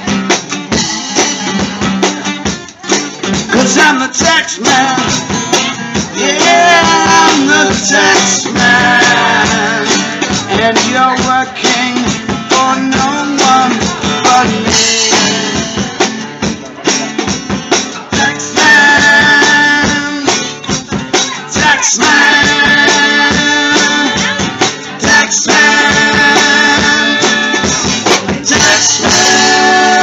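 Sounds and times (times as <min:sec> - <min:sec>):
drum kit: 0:00.0 - 0:30.0
strummed acoustic guitars: 0:00.0 - 0:30.0.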